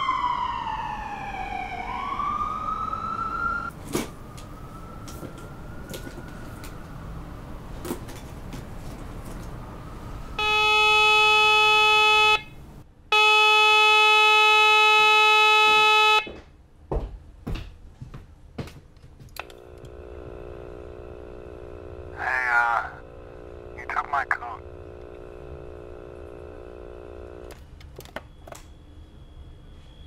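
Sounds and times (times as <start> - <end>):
loud electronic buzzer: 10.4 - 16.3
low steady hum: 19.4 - 29.4.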